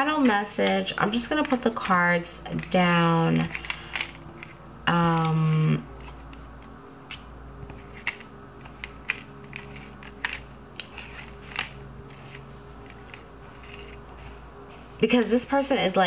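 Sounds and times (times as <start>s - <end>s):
faint background music: 0.0s - 16.0s
cards clicking on table: 0.2s - 2.0s, 6.0s - 14.0s.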